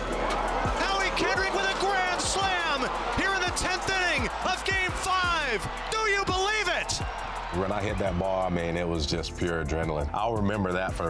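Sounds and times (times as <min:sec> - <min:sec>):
background music: 0:00.0 - 0:11.0
excited announcer calling: 0:00.7 - 0:08.2.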